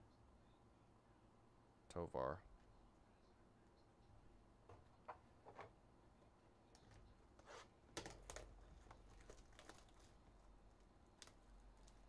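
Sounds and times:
plastic wrap and cardboard rustling: 0:07.4 - 0:12.0.

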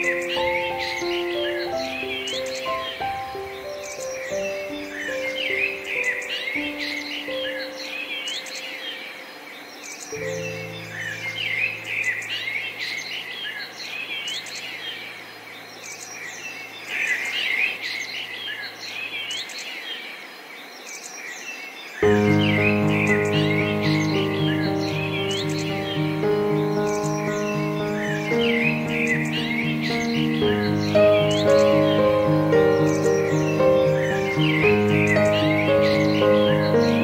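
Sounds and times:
gentle piano music: 0:00.0 - 0:15.3, 0:22.0 - 0:37.0
songbirds chirping and singing: 0:00.0 - 0:37.0.

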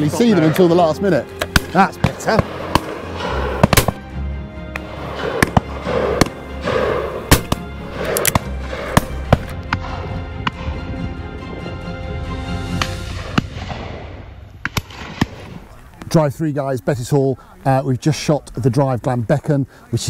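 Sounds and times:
background music: 0:00.0 - 0:17.2
shotguns firing: 0:01.3 - 0:04.0, 0:04.7 - 0:10.8, 0:12.8 - 0:15.7.

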